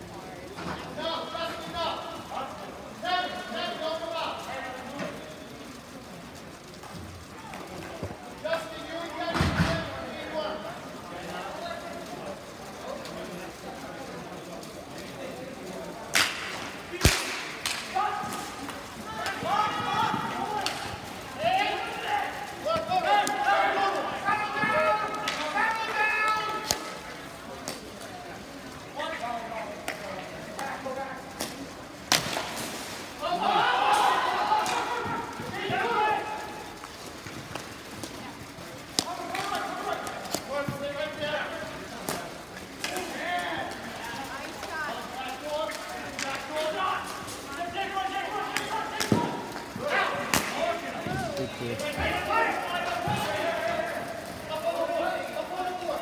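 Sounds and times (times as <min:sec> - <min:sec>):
sticks cracking on ball: 0:16.1 - 0:18.0
players shouting: 0:16.1 - 0:27.8, 0:33.1 - 0:37.2, 0:45.3 - 0:56.0.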